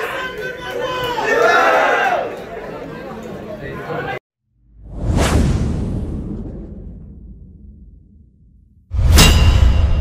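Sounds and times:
whoosh: 4.6s - 10.0s
deep low boom: 4.7s - 10.0s.

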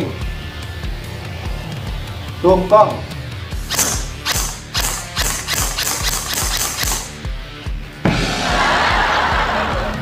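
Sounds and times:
background music with steady beat: 0.0s - 10.0s
airsoft rifle shots: 3.6s - 7.3s.

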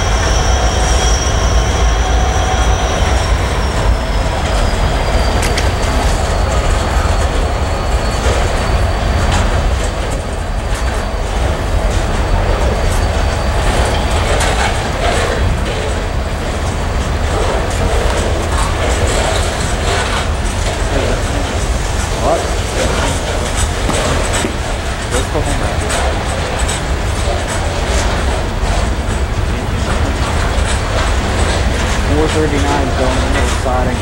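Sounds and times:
freight train rumbling past: 0.0s - 34.0s
train wheel clicks: 2.0s - 34.0s.

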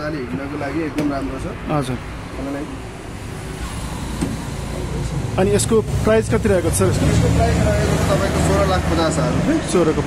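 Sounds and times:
rumble of passing vehicles: 0.0s - 10.0s.

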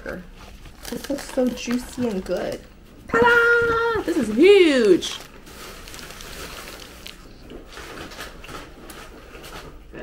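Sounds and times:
paper wrapper crinkling: 0.3s - 2.7s, 4.0s - 9.9s.

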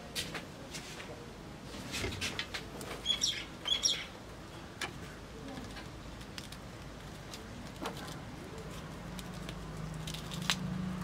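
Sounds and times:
small bird chirping: 3.0s - 4.2s.

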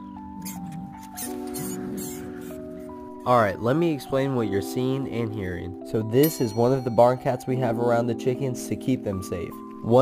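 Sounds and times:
mouse squeaks: 0.0s - 3.0s
background music with chords: 0.0s - 10.0s.

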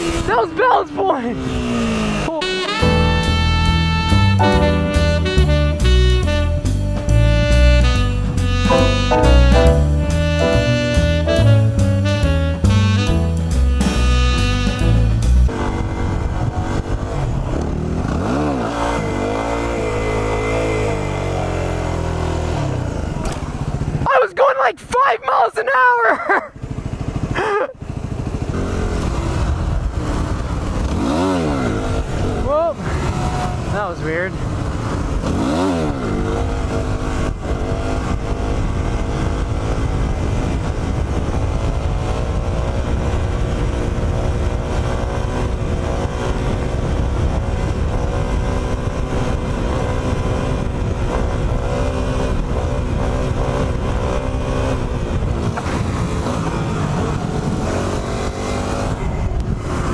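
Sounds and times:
motorcycle engine revving: 1.3s - 24.0s, 26.5s - 59.9s.

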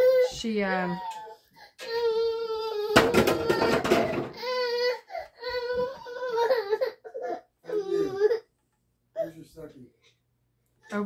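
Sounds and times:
toddler whining and crying: 0.0s - 8.5s.

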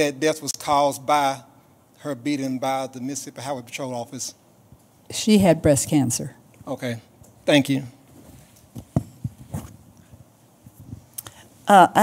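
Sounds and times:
microphone handling thumps: 8.1s - 11.1s.

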